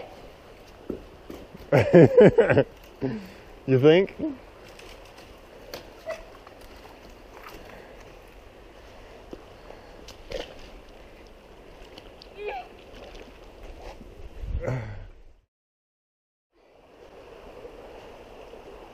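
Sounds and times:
shallow creek rushing: 0:00.0 - 0:14.3, 0:16.6 - 0:18.9.

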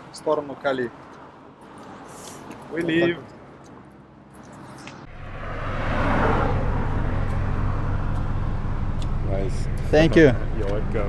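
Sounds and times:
low engine hum: 0:03.8 - 0:11.0
vehicle passing: 0:04.5 - 0:11.0.

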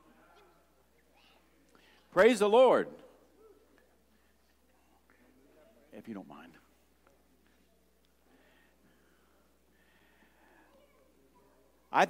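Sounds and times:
man speaking loudly: 0:02.1 - 0:03.1
murmur of distant voices: 0:03.1 - 0:12.0.

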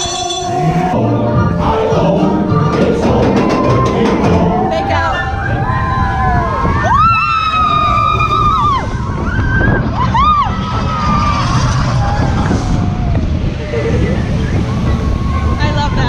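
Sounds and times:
roller coaster train rumbling: 0:00.0 - 0:16.0
rushing wind: 0:00.0 - 0:16.0
riders screaming: 0:05.0 - 0:15.9.

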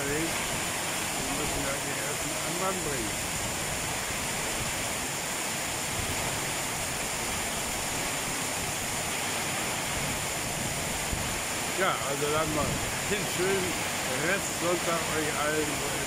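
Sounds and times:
heavy rain on wet street: 0:00.0 - 0:16.0.

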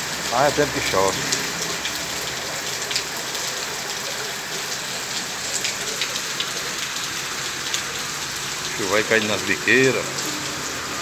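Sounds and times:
heavy rain on concrete: 0:00.0 - 0:11.0
raindrops ticking on ground: 0:00.0 - 0:11.0.

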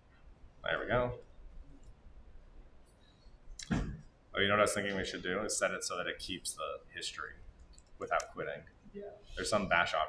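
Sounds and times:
man's voice: 0:00.7 - 0:01.2, 0:04.4 - 0:07.3, 0:08.0 - 0:08.6, 0:09.4 - 0:10.0
faint clicks: 0:07.6 - 0:08.8.

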